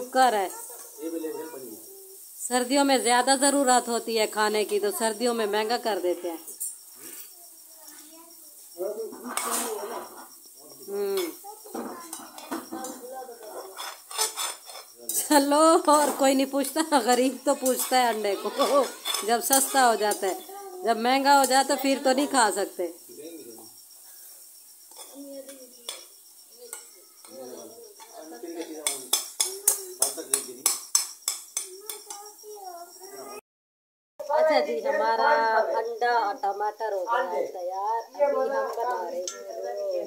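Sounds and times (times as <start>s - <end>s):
spatula scraping a frying pan: 13.5s - 15.3s, 17.1s - 20.5s.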